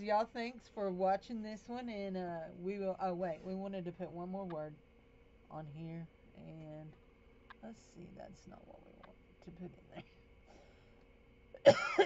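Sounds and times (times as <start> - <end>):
woman coughing: 11.6 - 12.0.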